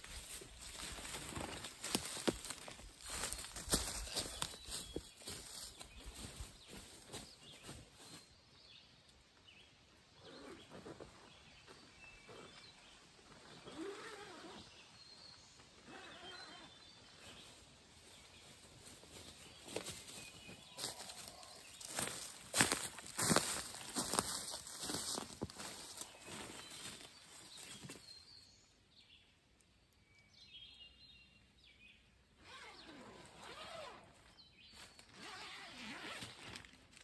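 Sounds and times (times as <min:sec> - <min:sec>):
faint bird chirps: 0:13.6 - 0:17.6.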